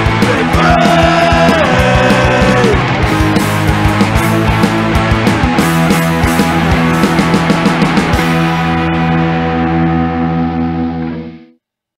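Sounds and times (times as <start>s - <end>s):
drums: 0.0s - 11.4s
bass guitar: 0.0s - 11.6s
distorted electric guitar chord: 0.0s - 11.6s.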